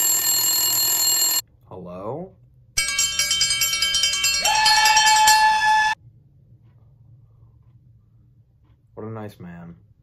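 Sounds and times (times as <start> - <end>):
metallic bell-like ringing: 2.8 - 6.0.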